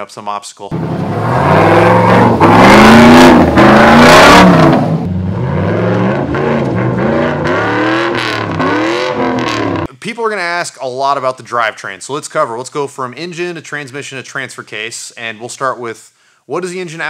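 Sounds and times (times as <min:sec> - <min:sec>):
engine revving hard: 0:00.7 - 0:09.9.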